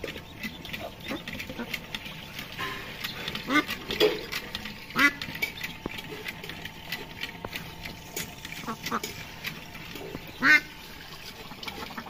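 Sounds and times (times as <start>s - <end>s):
ducklings peeping: 0.0s - 6.0s, 10.0s - 10.8s
duck quacking: 4.9s - 5.2s.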